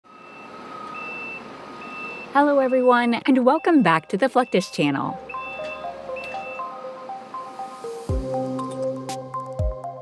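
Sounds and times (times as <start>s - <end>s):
high electronic warning beeps: 0.1s - 7.8s.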